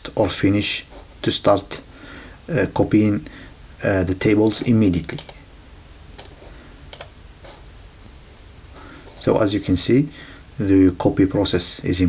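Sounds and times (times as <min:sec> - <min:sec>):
computer mouse clicks: 0:05.1 - 0:05.4, 0:06.9 - 0:07.2.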